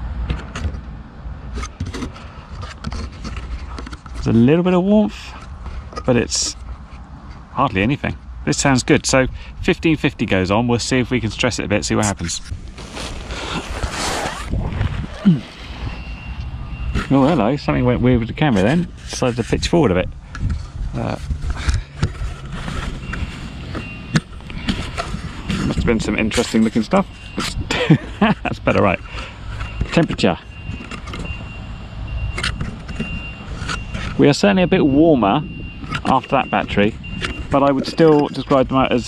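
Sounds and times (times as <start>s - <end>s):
wind rumbling on microphone: 12.1s - 27.8s, 30.5s - 39.0s
rustling burst: 12.5s - 16.0s.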